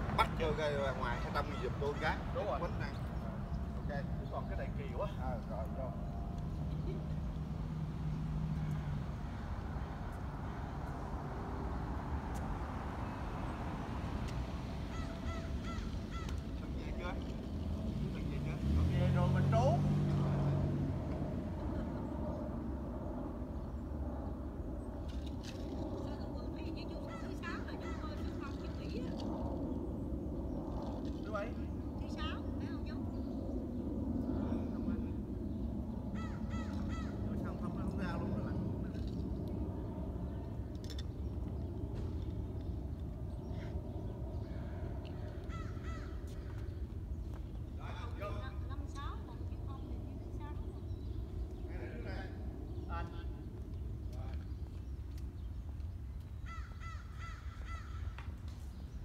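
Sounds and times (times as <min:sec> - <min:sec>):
steady low rumble: 0:00.0 - 0:18.6, 0:20.2 - 0:59.0.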